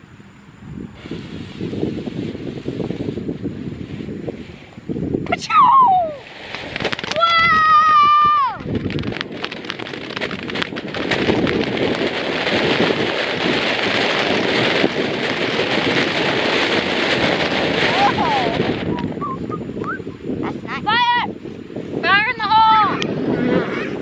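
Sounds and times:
firework fountain hissing: 0.9s - 19.2s.

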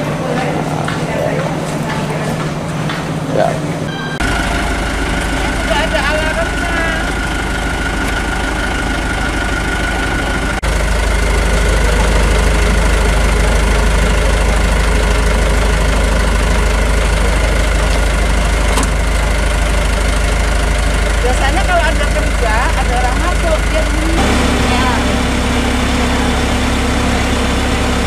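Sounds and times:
vehicle engine idling: 0.0s - 28.0s.

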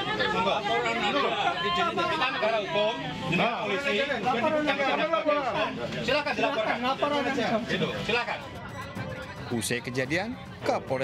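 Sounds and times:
people arguing: 0.0s - 11.0s.

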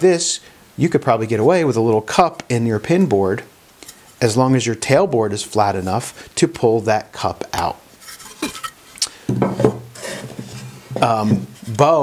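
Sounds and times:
wooden boards knocking on workbench: 9.3s - 11.5s.

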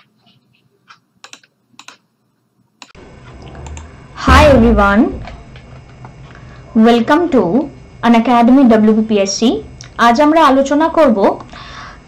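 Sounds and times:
computer keys clicking: 1.2s - 2.0s, 3.6s - 3.9s.

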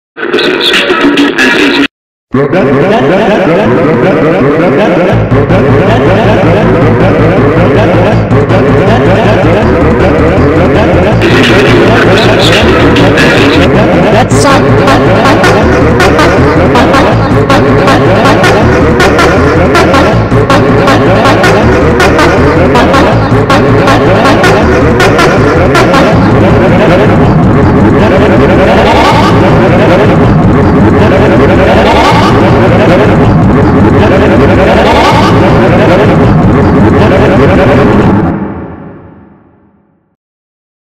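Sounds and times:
overlapping cartoon voices: 0.2s - 38.3s
low droning tone: 2.8s - 40.0s.

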